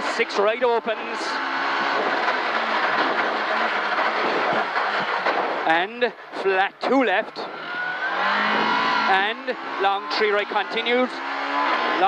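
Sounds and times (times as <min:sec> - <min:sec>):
car engine running hard: 0:00.0 - 0:12.0
road noise: 0:00.0 - 0:12.0
gearbox noise: 0:01.5 - 0:05.8.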